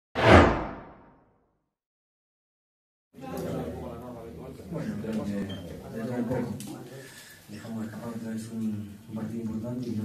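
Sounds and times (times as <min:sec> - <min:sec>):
whoosh sound effect: 0:00.2 - 0:01.2.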